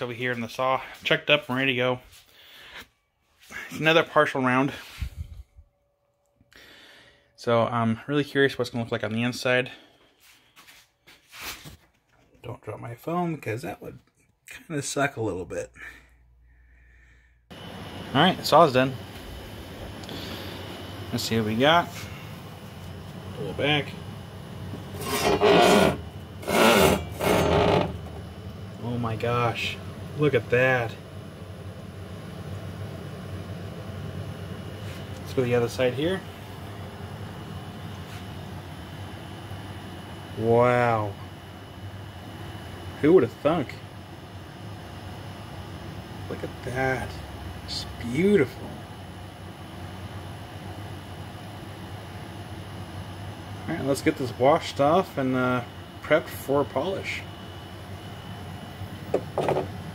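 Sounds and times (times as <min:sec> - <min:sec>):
low machine hum: 0:12.5 - 0:59.9
saw carriage scraping on rails: 0:24.9 - 0:28.1.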